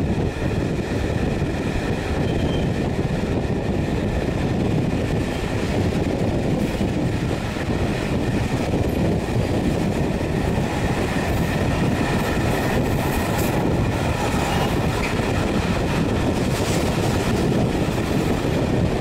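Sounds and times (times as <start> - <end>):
clickety-clack over rail joints: 0.0 - 19.0
train wheels rumbling on rails: 0.0 - 19.0.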